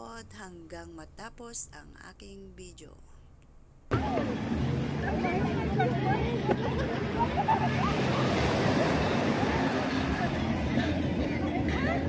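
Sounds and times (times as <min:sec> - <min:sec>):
distant voices of people: 0:03.9 - 0:12.0
small waves washing onto sand: 0:03.9 - 0:12.0.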